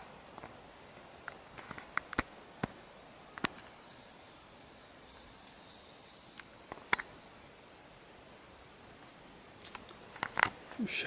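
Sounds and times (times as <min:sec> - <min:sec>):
high insect trill: 0:03.5 - 0:06.8.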